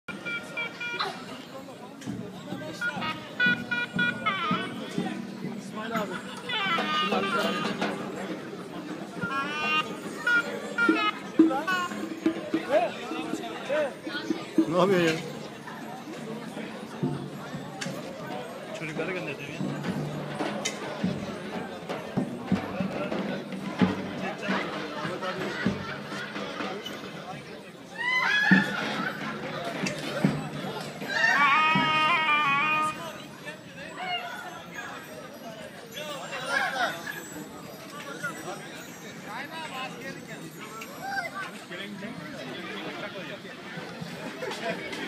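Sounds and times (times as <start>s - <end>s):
crowd talking: 0.0s - 45.0s
high-pitched wind instrument: 2.8s - 5.0s, 6.2s - 8.4s, 9.1s - 12.3s.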